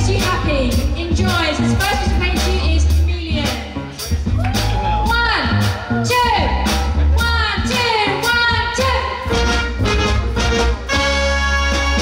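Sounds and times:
singing over strong bass: 0.0s - 10.9s.

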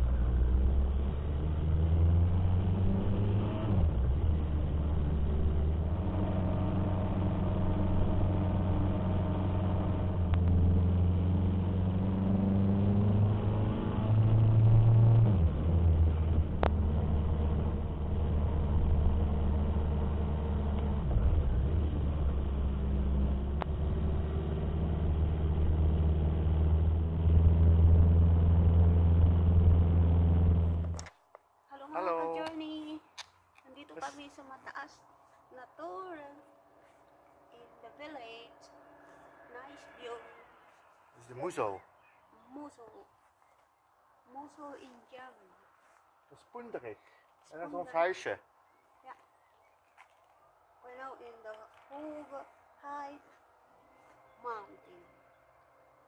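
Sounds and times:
motorcycle engine running: 0.0s - 13.3s, 14.1s - 31.0s
wind and road noise: 0.0s - 56.0s.

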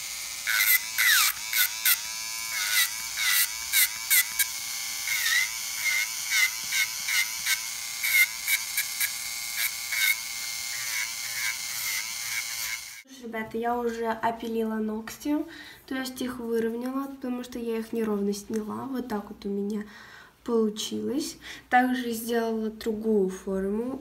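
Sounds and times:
bit grinding nail: 0.0s - 13.0s
electric nail drill whining: 0.0s - 13.0s.

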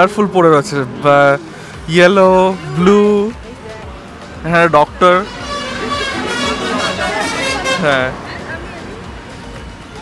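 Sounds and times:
highway traffic hum: 0.0s - 10.0s
voices: 0.0s - 10.0s.

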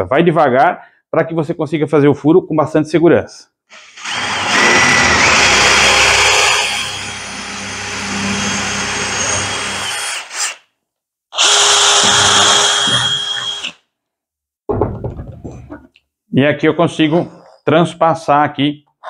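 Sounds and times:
cordless drill boring wood: 3.7s - 10.7s, 11.4s - 13.8s
knocks: 14.7s - 15.9s.

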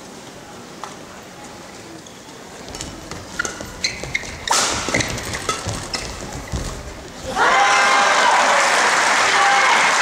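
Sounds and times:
crowd noise: 0.0s - 10.0s
shoe squeaks on court floor: 2.0s - 7.0s
racket striking shuttlecock: 3.4s - 5.9s.

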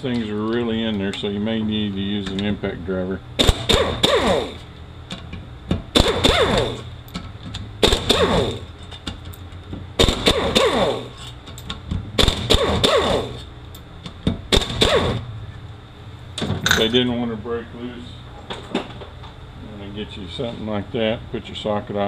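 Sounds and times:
hammer striking impact driver: 3.4s - 4.7s, 5.9s - 6.9s, 7.8s - 8.7s, 10.0s - 11.3s, 12.2s - 13.4s, 14.5s - 15.2s.

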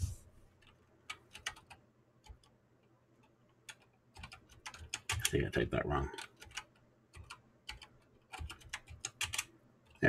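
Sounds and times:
computer keyboard keystrokes: 0.6s - 2.5s, 3.6s - 5.4s, 6.2s - 10.0s.

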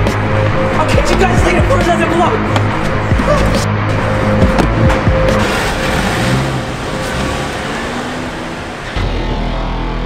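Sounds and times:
car running: 0.0s - 10.0s
music: 0.0s - 10.0s.

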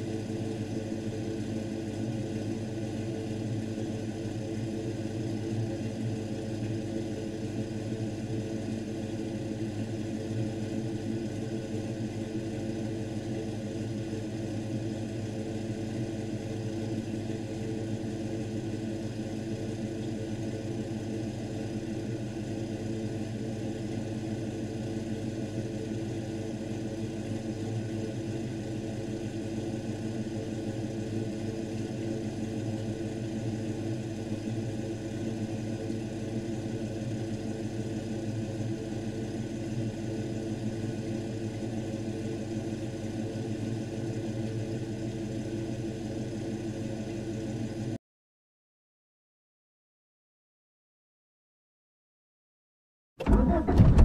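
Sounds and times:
car engine idling: 53.2s - 54.0s.

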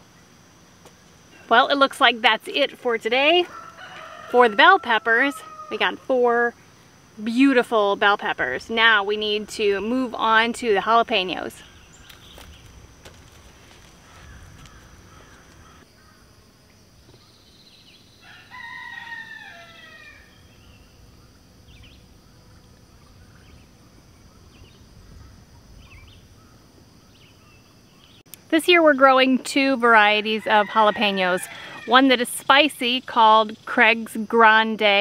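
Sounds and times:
faint rooster crowing: 3.4s - 6.0s, 18.2s - 20.4s, 30.3s - 32.0s.

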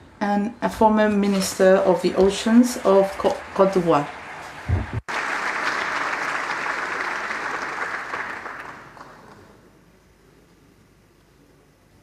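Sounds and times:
audience applauding: 2.6s - 9.7s.

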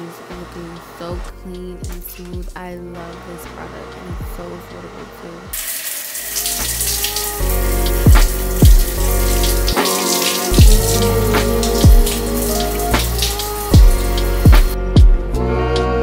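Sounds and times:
shower water spraying on tile: 5.6s - 14.8s
music with heavy bass beat: 6.9s - 15.4s.

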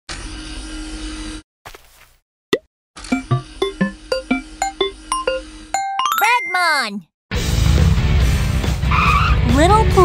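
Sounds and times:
bouncy plucky plopping notes: 3.2s - 5.0s
rising bloop: 3.2s - 6.2s.

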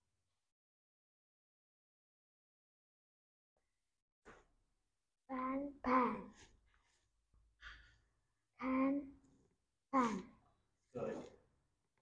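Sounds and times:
child speaking: 5.3s - 6.4s, 8.6s - 9.2s, 10.0s - 10.4s
soft breath: 6.2s - 8.2s.

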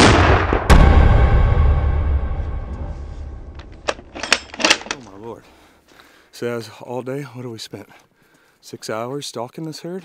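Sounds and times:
low rumble: 0.0s - 4.5s.

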